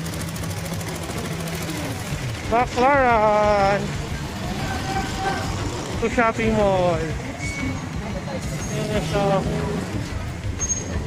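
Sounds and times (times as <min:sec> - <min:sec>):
street traffic noise: 0:00.0 - 0:11.0.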